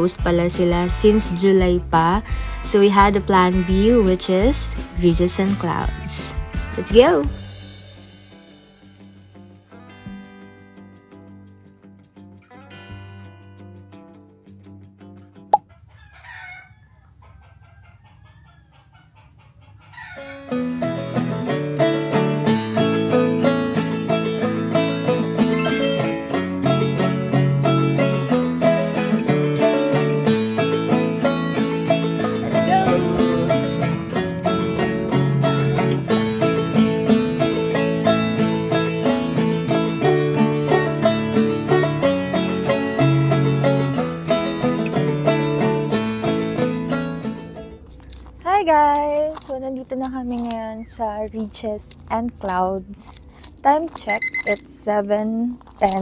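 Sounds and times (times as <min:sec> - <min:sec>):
woman talking: 0:00.0 - 0:07.4, 0:48.4 - 0:56.0
plucked string music: 0:20.5 - 0:48.6.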